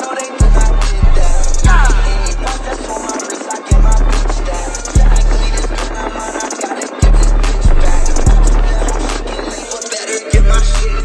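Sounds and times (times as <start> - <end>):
hi-hat ticks: 0.0 - 11.0
trap beat: 0.0 - 11.0
deep bass hits: 0.5 - 2.5, 7.1 - 9.2.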